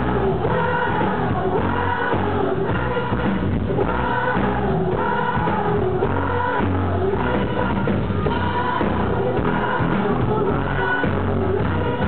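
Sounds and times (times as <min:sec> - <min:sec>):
bass guitar: 0:00.0 - 0:12.0
drums: 0:00.0 - 0:12.0
person singing lead vocal: 0:00.0 - 0:12.0
women singing backing vocals: 0:00.0 - 0:12.0.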